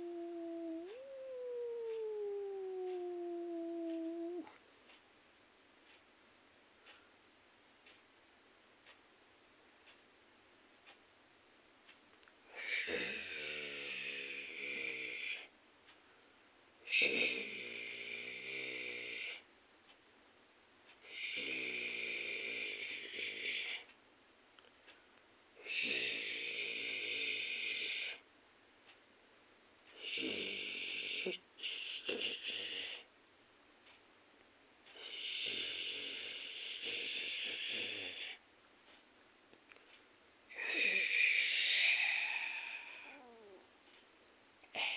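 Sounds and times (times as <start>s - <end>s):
crickets chirping: 0.0s - 44.9s.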